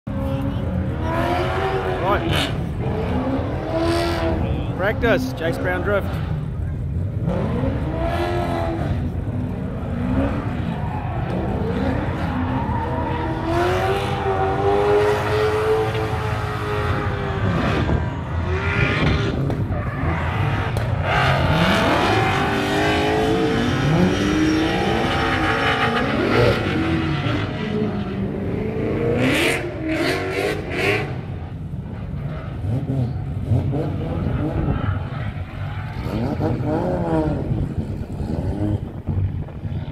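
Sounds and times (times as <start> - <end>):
car engine revving hard: 7.1 - 31.3, 35.9 - 39.0.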